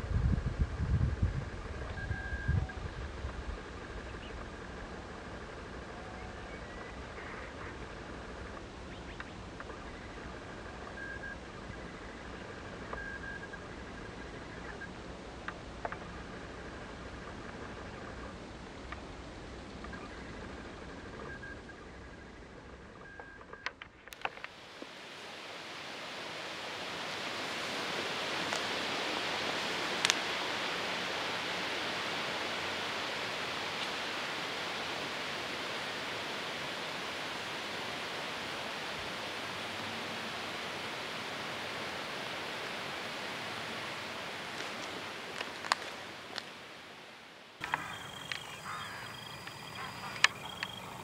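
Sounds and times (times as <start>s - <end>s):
wind rustling leaves: 0.0s - 51.0s.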